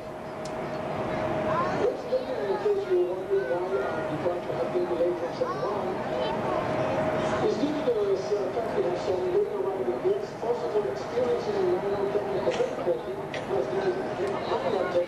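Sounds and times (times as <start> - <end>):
steady hum: 0.0 - 15.0.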